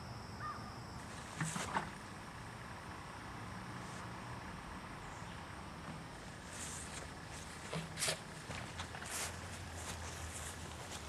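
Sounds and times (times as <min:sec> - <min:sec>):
faint insect buzz: 0:00.0 - 0:11.0.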